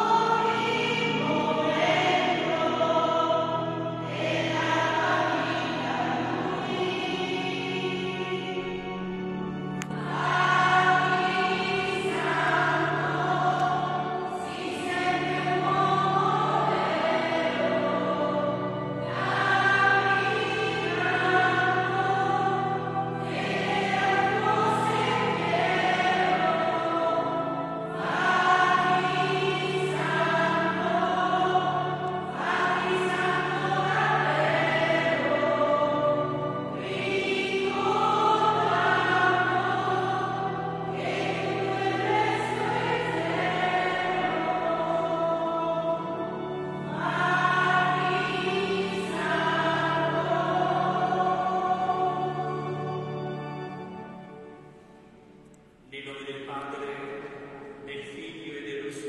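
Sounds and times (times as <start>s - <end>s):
church choir singing a hymn: 0.0s - 55.3s, 55.9s - 59.0s.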